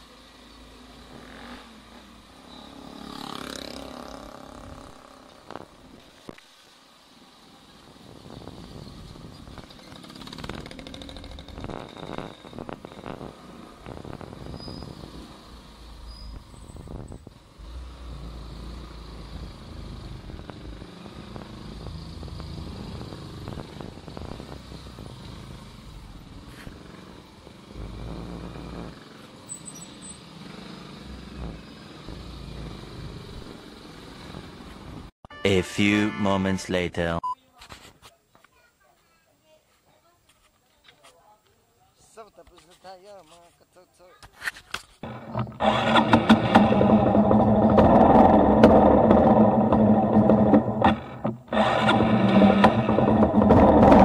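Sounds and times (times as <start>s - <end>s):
road and wind noise: 0.0s - 35.1s, 44.1s - 54.0s
motorcycle engine rumble: 45.0s - 54.0s.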